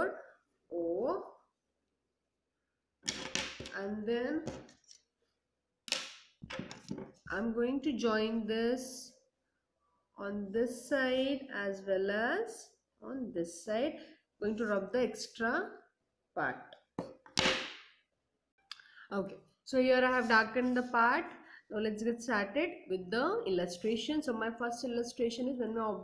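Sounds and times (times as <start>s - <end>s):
ruler swishing on paper: 20.1s - 21.0s.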